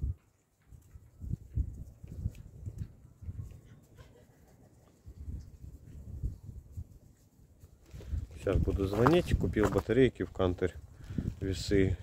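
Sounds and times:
ducks making low quiet sounds: 0:03.2 - 0:05.7.

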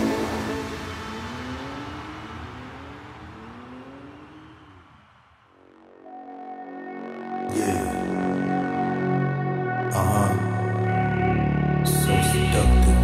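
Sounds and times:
car engine accelerating: 0:00.0 - 0:05.2
trap music: 0:06.0 - 0:13.0.

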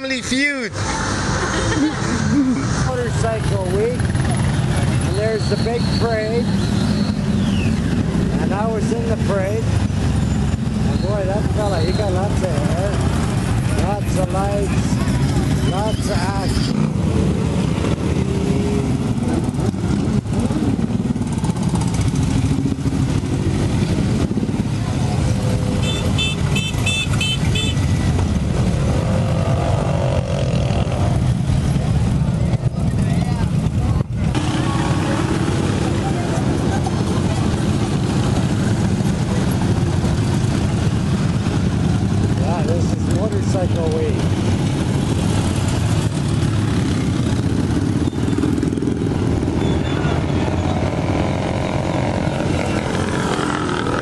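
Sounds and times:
crowd voices: 0:00.0 - 0:09.6, 0:30.8 - 0:41.2
motorcycle engines: 0:00.0 - 0:54.0.

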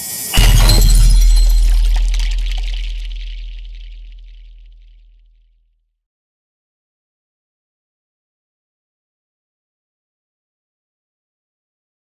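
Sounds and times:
bright high shimmer: 0:00.0 - 0:04.6
heavy hit with deep boom: 0:00.4 - 0:05.0.

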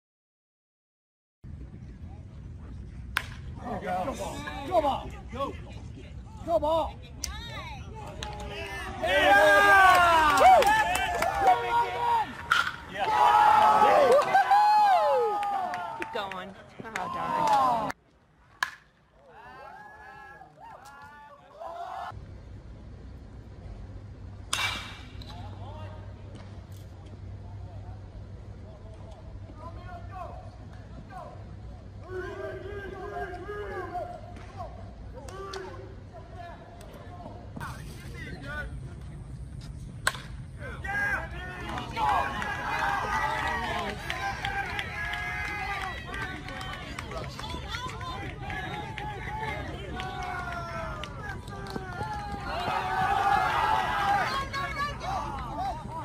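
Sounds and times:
bat hitting ball: 0:03.1 - 0:03.4, 0:12.4 - 0:12.9, 0:18.6 - 0:19.0, 0:24.5 - 0:25.4, 0:40.0 - 0:40.4
spectators chattering: 0:41.4 - 0:56.0.

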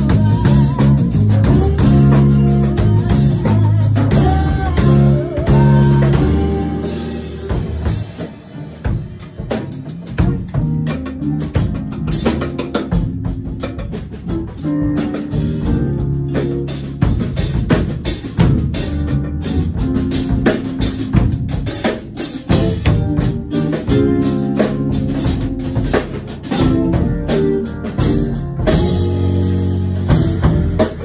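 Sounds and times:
drum kit hits: 0:00.0 - 0:31.0.

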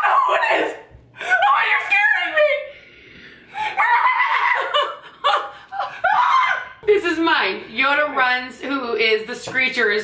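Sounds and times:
women laughing hard: 0:03.8 - 0:06.6.

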